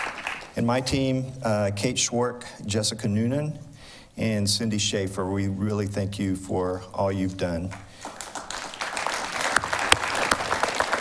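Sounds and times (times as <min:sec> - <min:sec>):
audience applauding: 0:00.0 - 0:00.6, 0:07.7 - 0:11.0
sharp close clap: 0:09.4 - 0:11.0.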